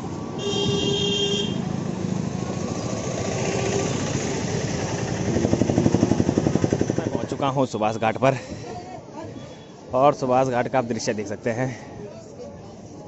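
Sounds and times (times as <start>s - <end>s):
high-pitched vehicle horn: 0.4s - 1.7s
motorcycle engine passing: 0.6s - 7.2s.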